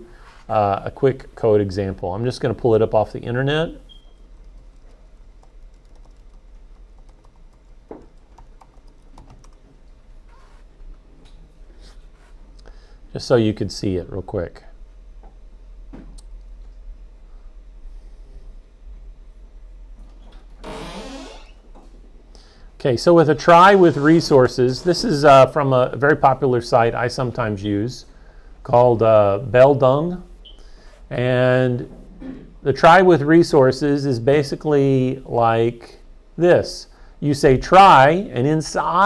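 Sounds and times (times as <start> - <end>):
low steady hum: 0.0 - 39.0
computer keyboard typing: 4.3 - 9.6.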